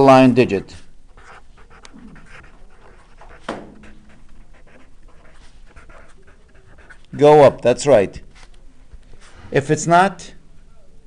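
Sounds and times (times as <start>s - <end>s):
marker scratching on paper: 1.1s - 7.6s.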